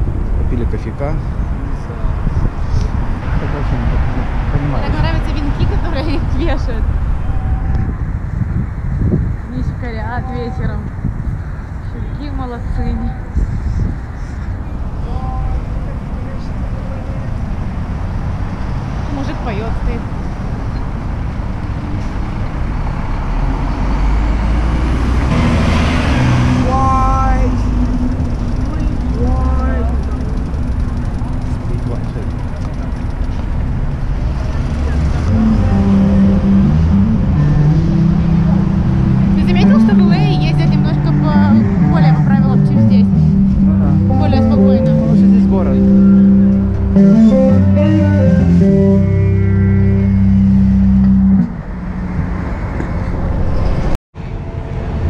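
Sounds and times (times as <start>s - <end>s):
city street traffic: 0.0s - 55.0s
man singing long notes: 35.3s - 38.8s, 41.5s - 50.4s.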